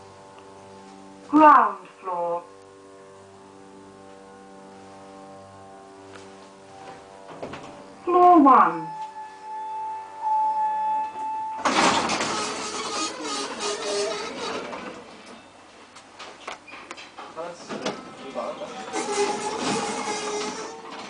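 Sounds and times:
steady electronic tone: 0:02.3 - 0:14.6
sliding lift doors: 0:10.9 - 0:15.6, 0:16.2 - 0:21.0.

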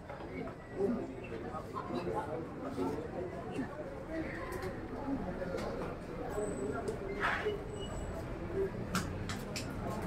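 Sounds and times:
murmur of spectators chatting: 0:00.0 - 0:10.0.

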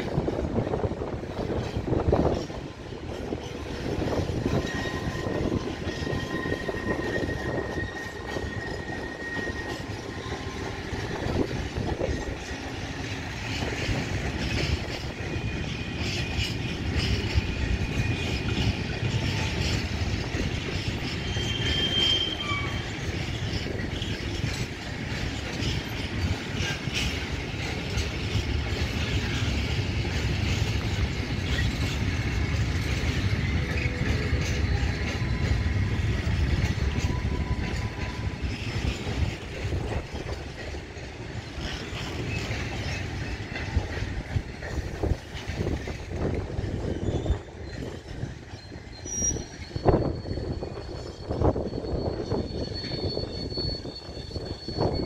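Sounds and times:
wheels clacking over rail joints: 0:00.0 - 0:53.4
thin wheel squeals: 0:04.4 - 0:12.5, 0:19.2 - 0:24.6, 0:31.4 - 0:40.2, 0:45.0 - 0:55.0.

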